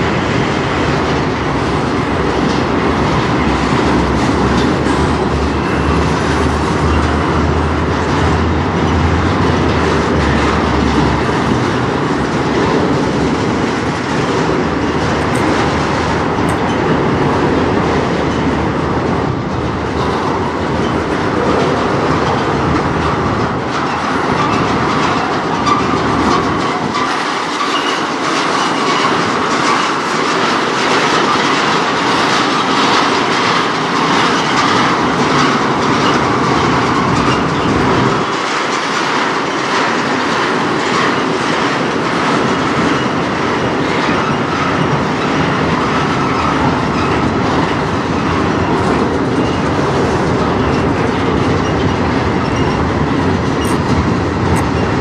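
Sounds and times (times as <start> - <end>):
train wheels rumbling on rail: 0.0 - 55.0
wheels clicking over rail joints: 0.0 - 55.0.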